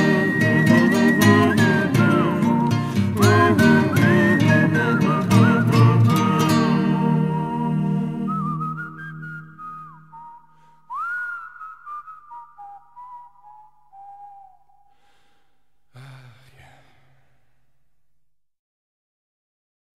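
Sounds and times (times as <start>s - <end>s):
whistled melody: 0.0s - 15.4s
breathy sound: 10.3s - 11.4s, 12.6s - 17.7s.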